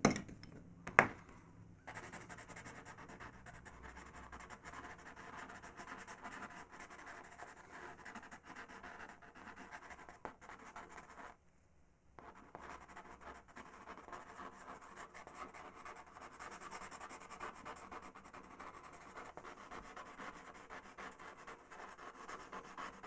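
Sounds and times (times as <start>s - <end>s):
pencil scratching on paper: 1.9s - 11.4s, 12.2s - 23.0s.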